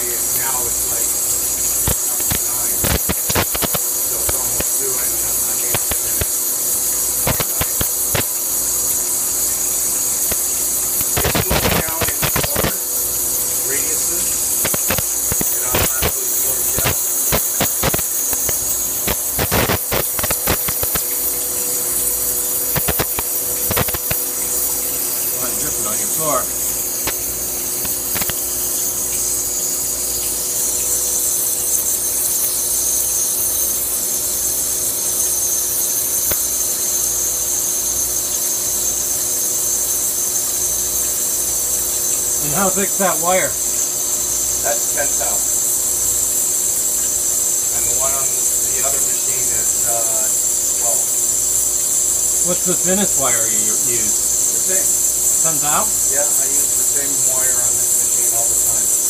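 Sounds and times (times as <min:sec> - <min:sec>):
electrical hum: 0:00.0 - 0:59.0
high hiss of sparking wire: 0:00.0 - 0:59.0
sharp clicks: 0:01.8 - 0:03.8, 0:14.6 - 0:16.2, 0:22.7 - 0:24.6, 0:27.0 - 0:29.3.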